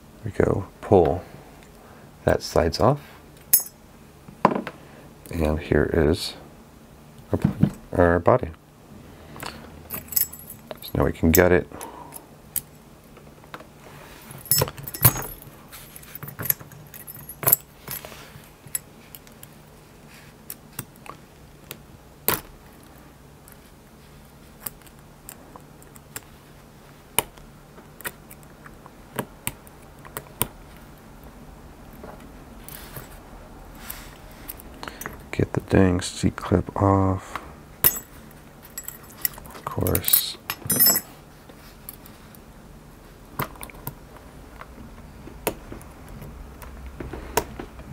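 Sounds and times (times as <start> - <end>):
faint steady hum: 0.0 - 47.9
lock parts clicking and clinking: 3.4 - 3.8, 9.9 - 11.6, 14.4 - 19.5, 37.8 - 41.1.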